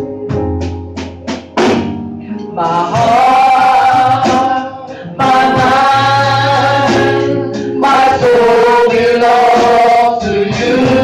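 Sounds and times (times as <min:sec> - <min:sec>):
live church band: 0:00.0 - 0:11.0
woman singing gospel song: 0:02.3 - 0:11.0.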